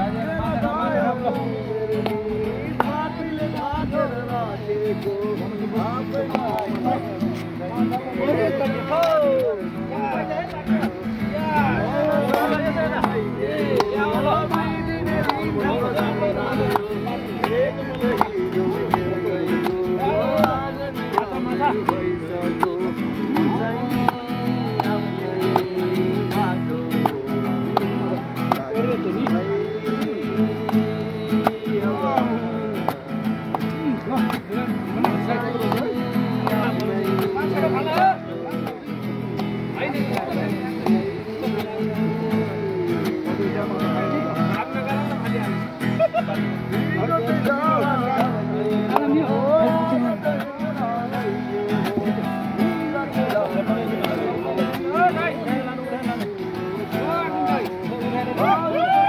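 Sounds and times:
acoustic guitar strumming: 0.0s - 59.0s
men singing: 0.0s - 59.0s.

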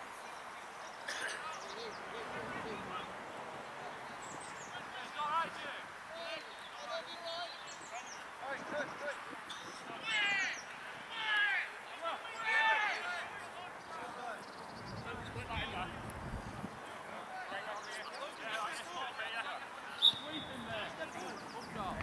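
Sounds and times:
distant players shouting: 10.0s - 14.4s.

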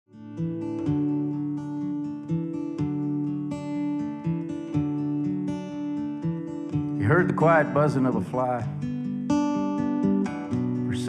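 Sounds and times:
acoustic guitar picking: 0.1s - 11.0s.

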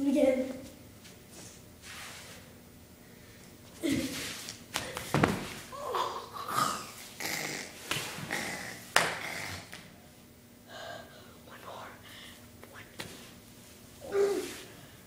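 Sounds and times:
knocks on hard floor: 5.1s - 5.6s
person breathing: 10.6s - 11.4s, 12.0s - 12.5s.

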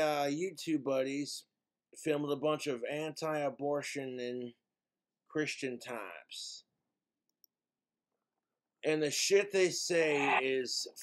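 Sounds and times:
man's voice: 8.9s - 11.0s.

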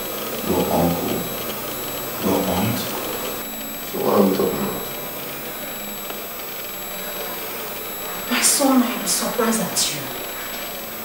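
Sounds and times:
steady background hiss: 0.0s - 11.0s
person speaking: 0.4s - 5.1s.

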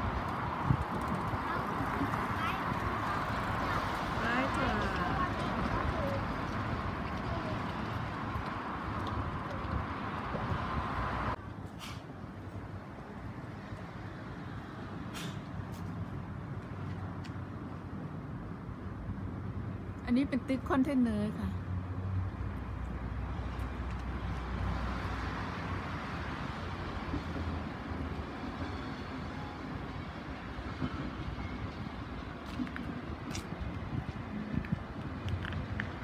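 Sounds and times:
street traffic rumble: 0.0s - 36.0s
brief hiss: 11.7s - 12.1s, 15.1s - 15.5s.

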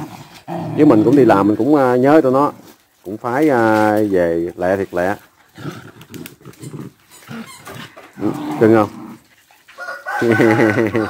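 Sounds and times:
dogs growling and grunting: 0.0s - 2.7s, 4.8s - 9.6s.

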